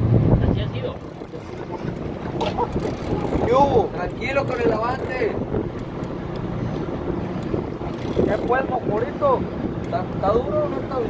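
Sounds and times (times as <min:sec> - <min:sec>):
boat engine running: 0:00.0 - 0:11.0
wind noise on microphone: 0:00.0 - 0:11.0.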